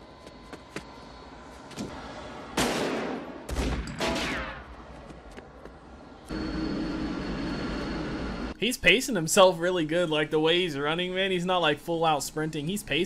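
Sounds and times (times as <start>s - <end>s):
loud gunshots echoing: 2.5s - 4.6s
jet engine with high whine: 5.3s - 8.6s.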